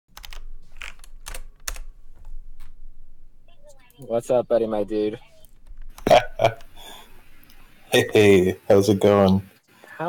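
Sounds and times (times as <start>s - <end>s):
computer keyboard keystrokes: 0.2s - 1.9s.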